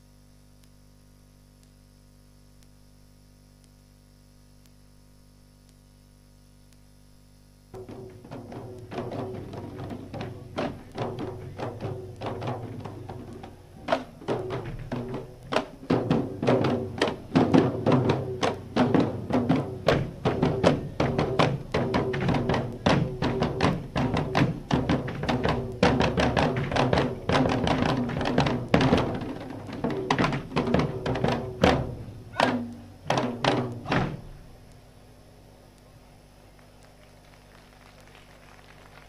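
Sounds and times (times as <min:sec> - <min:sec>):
large drums beaten: 0:07.8 - 0:34.4.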